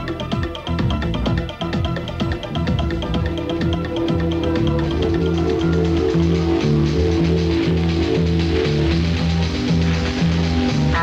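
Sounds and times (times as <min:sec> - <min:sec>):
instrumental music on am radio: 0:00.0 - 0:11.0.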